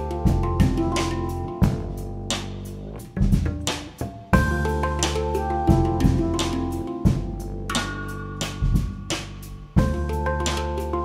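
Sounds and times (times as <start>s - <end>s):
handpan notes: 0.0s - 11.0s
plucked double bass: 0.0s - 11.0s
drum hits: 0.3s - 10.2s.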